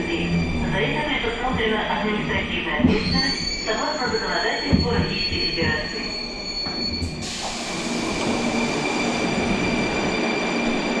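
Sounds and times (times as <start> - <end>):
metro train rolling noise: 0.0 - 11.0
train high whine: 0.0 - 11.0.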